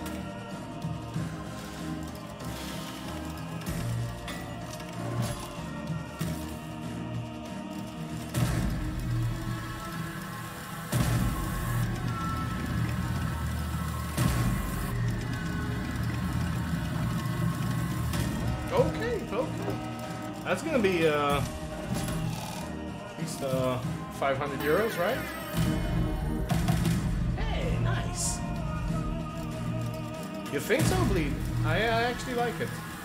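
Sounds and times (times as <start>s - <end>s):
slot game music with bass: 0.0s - 33.0s.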